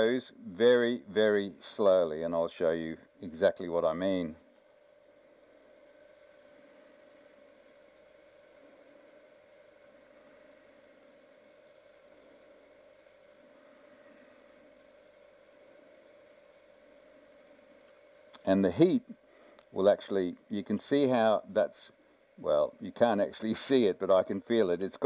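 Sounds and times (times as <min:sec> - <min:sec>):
wood lathe humming: 0:00.0 - 0:24.9.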